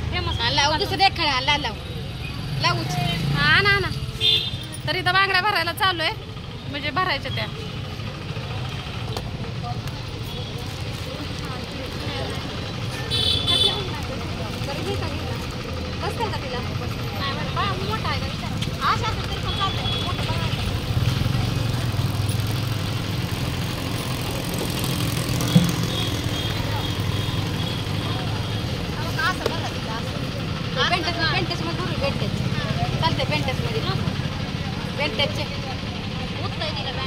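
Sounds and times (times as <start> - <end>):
traffic engine drone: 0.0 - 37.0
car horn toot: 13.0 - 13.9.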